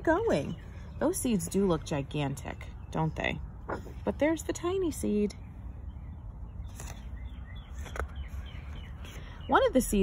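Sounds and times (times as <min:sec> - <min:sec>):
birds chirping: 0:00.0 - 0:10.0
low outdoor rumble: 0:00.0 - 0:10.0
book page rustling: 0:06.6 - 0:09.2.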